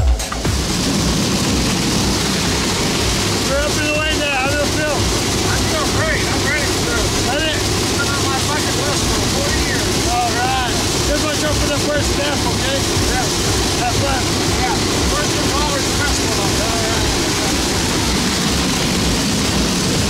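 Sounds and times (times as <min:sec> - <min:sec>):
airplane engine and wind noise: 0:04.6 - 0:20.0.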